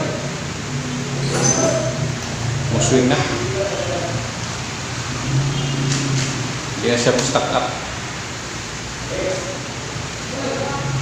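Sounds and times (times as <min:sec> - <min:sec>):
electric fan blowing air: 0:00.0 - 0:11.0.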